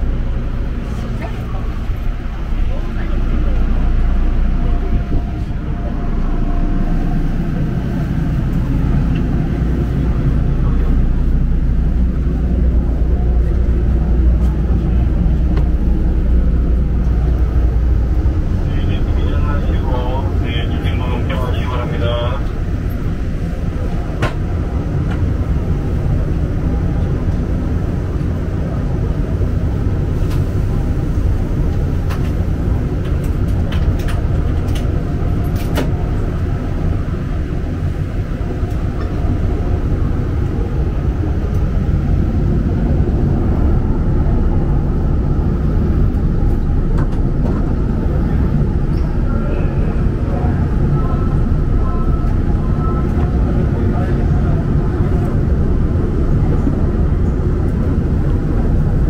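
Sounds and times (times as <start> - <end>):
monorail train rumble: 0.0 - 59.0.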